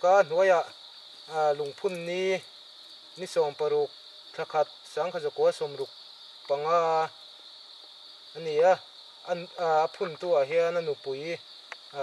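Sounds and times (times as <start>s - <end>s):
man speaking: 0.0s - 0.7s, 1.3s - 2.4s, 3.2s - 5.9s, 6.5s - 7.1s, 8.4s - 11.4s
insects droning: 0.0s - 12.0s.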